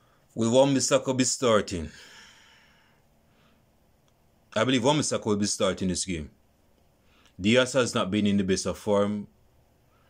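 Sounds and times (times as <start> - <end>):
faint breath: 1.9 - 3.8, 9.8 - 10.0.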